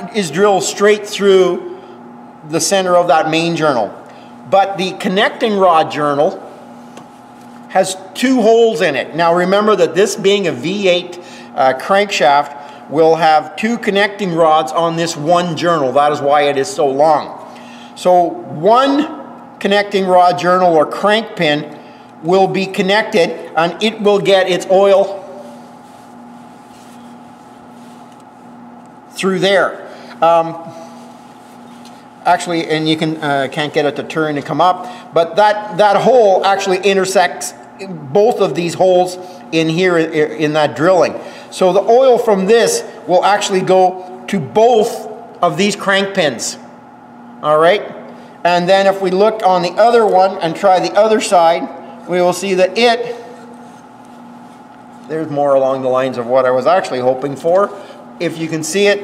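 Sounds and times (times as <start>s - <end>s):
low steady room hum: 0.0s - 59.0s.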